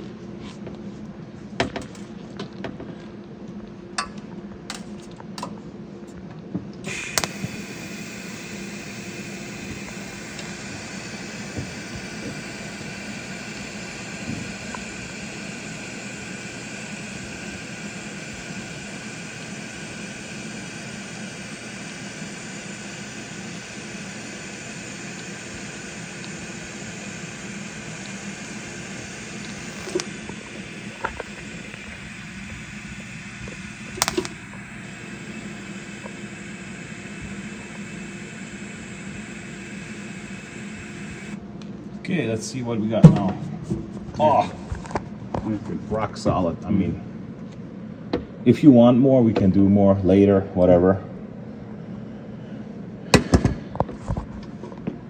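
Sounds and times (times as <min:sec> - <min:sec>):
welding arc buzzing hiss: 0:06.8 - 0:41.5
sharp welding cracks: 0:06.9 - 0:07.8, 0:29.4 - 0:34.5.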